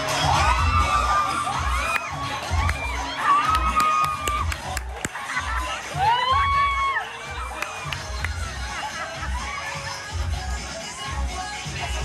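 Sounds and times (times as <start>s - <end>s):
crowd screaming and cheering: 0.0s - 12.0s
dance music with bass beat: 0.0s - 12.0s.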